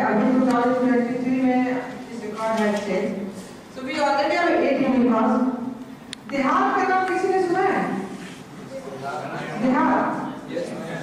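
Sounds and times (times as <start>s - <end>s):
woman speaking into microphone: 0.0s - 8.2s, 9.5s - 10.3s.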